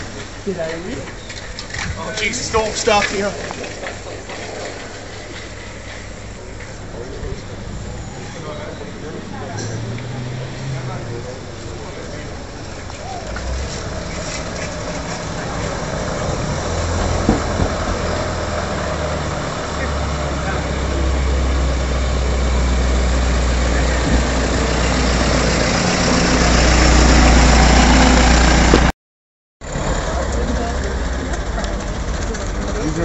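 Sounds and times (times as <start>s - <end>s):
truck engine rumble: 0.0s - 28.9s, 29.6s - 33.0s.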